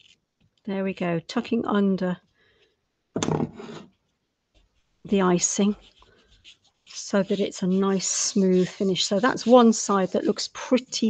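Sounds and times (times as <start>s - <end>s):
fondant rubbing against foil board: 4.6s - 11.0s.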